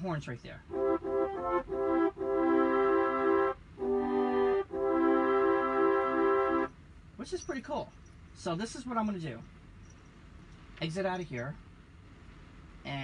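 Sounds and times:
keyboard brass chords: 0:00.7 - 0:06.8.

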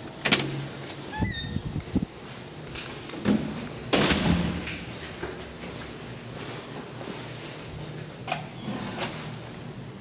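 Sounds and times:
door squeaking: 0:01.1 - 0:01.7.

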